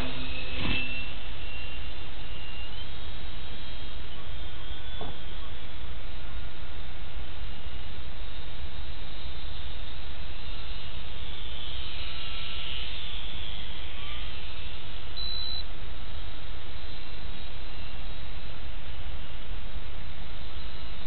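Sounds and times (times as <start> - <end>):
short high beep: 15.2 - 15.6.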